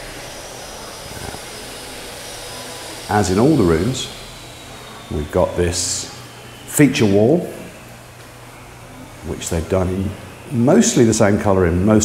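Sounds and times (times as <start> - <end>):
steady rushing noise: 0.0 - 8.1.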